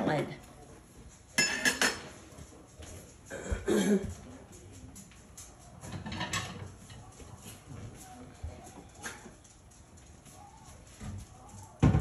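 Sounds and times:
faint kitchen knocks and shuffles: 0.0 - 12.0.

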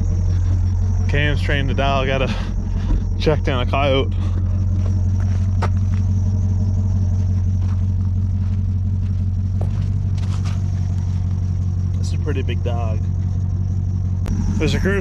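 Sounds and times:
vehicle engine idling: 0.0 - 15.0
faint scuffs on gravel: 4.4 - 6.2, 7.2 - 11.5.

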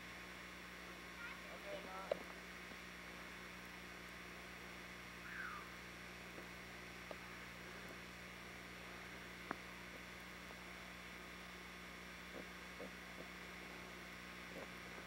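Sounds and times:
electrical hum and hiss: 0.0 - 15.0
faint falling call: 5.2 - 5.8.

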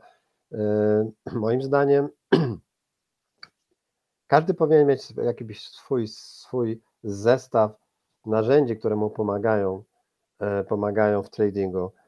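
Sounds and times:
man clearing throat: 2.3 - 2.6.

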